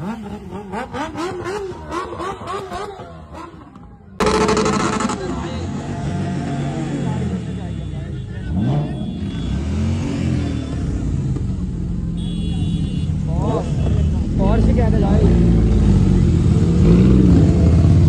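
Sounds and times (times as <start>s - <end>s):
crowd chatter: 0.0s - 16.3s.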